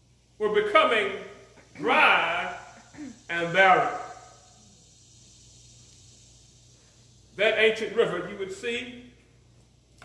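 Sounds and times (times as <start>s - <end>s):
steady low hum: 0.0s - 10.0s
man's voice echo: 0.4s - 4.4s, 7.4s - 9.2s.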